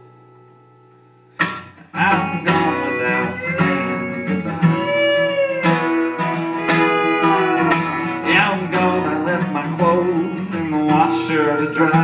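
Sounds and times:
acoustic guitar: 0.0 - 12.0
steel guitar: 0.0 - 12.0.

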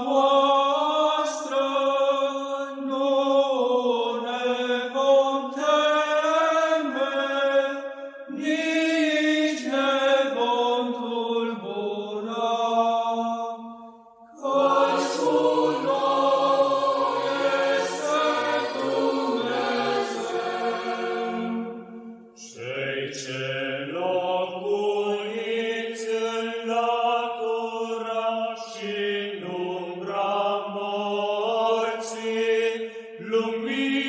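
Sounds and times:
choir chanting long held notes: 14.3 - 32.7.

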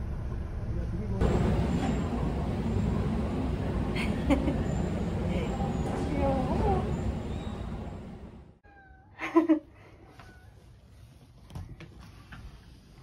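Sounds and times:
low background rumble: 0.0 - 8.6.

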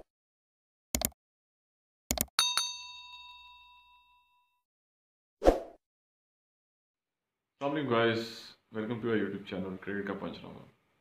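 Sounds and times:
bell ding ringing: 2.4 - 4.6.

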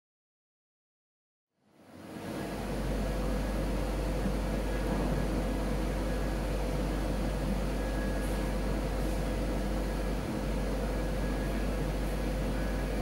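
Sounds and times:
ventilation hum and air hiss: 1.6 - 13.0.

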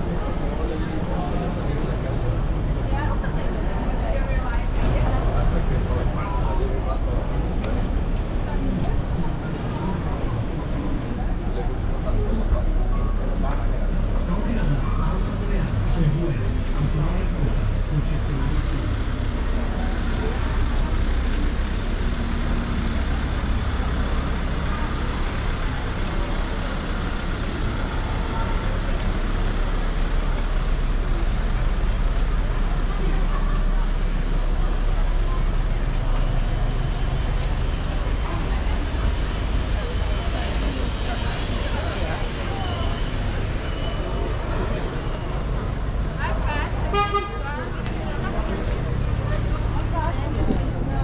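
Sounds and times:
crowd talking: 0.0 - 51.0
traffic rumble: 0.0 - 51.0.

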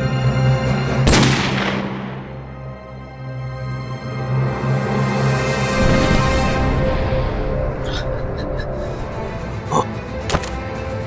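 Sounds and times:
dramatic film score music: 0.0 - 11.0
revolver gunshot with echo: 1.1 - 2.4.

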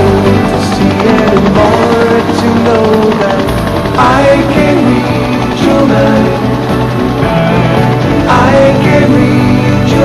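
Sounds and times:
helicopter rotor chop: 0.0 - 10.0
music with held keyboard notes: 0.0 - 10.0.

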